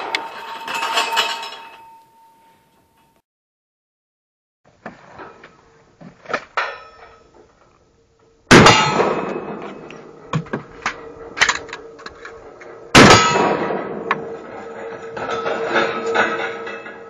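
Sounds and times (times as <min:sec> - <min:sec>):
loud gunshots ringing: 0:08.5 - 0:09.6, 0:12.9 - 0:14.1.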